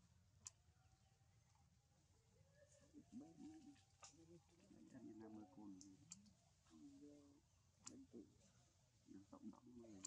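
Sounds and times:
soft clicks: 0:00.4 - 0:00.6, 0:05.7 - 0:06.7, 0:07.8 - 0:08.1
faint distant voices: 0:00.6 - 0:10.0.

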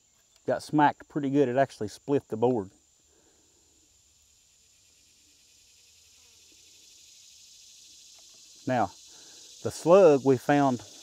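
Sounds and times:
crickets droning: 0:00.0 - 0:11.0.

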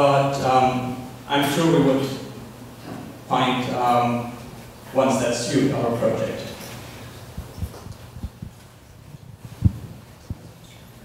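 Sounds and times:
microphone handling thumps: 0:07.3 - 0:10.6.

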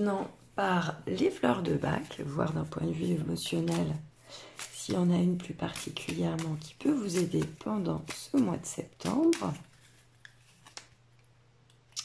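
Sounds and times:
cards clicking: 0:03.6 - 0:11.0.

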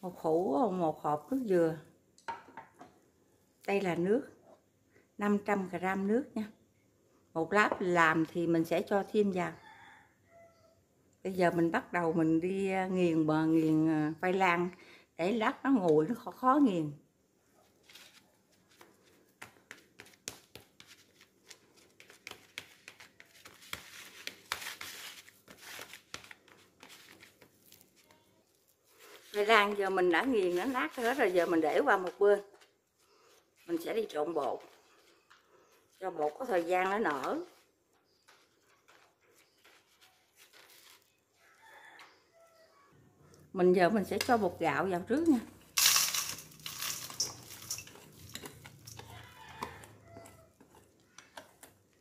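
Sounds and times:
spoon clicking and scraping bowl: 0:45.8 - 0:51.8.

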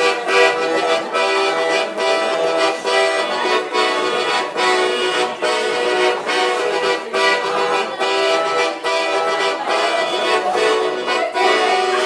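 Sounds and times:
piano accordion playing: 0:00.0 - 0:12.0.

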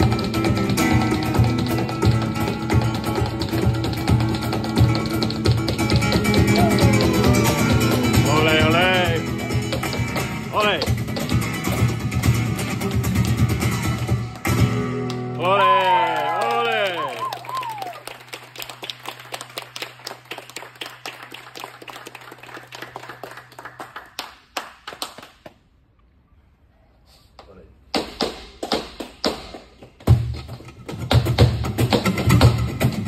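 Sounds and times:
rapid sharp percussive taps: 0:00.0 - 0:14.6
flamenco guitar: 0:00.0 - 0:24.3, 0:28.0 - 0:33.0.

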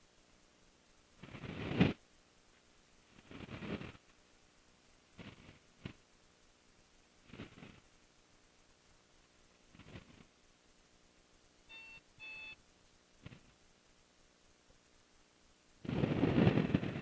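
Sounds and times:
short bursts of headset noise: 0:01.2 - 0:02.1, 0:03.1 - 0:04.1, 0:07.2 - 0:08.0.

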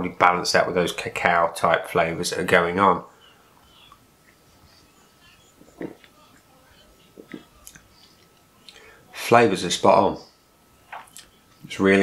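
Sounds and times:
person gulping: 0:05.8 - 0:06.1.

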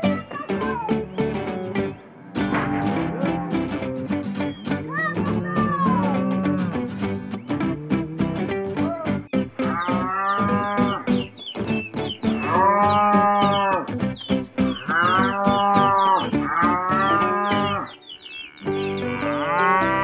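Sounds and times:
music with plucked-string beat: 0:00.0 - 0:20.0
cattle mooing: 0:02.2 - 0:03.8, 0:04.9 - 0:08.6, 0:09.6 - 0:11.1, 0:12.4 - 0:13.9, 0:14.8 - 0:20.0.

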